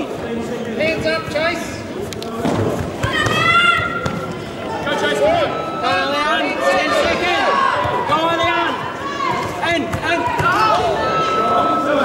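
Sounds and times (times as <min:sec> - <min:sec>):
people shouting in a large hall: 0:02.8 - 0:12.0.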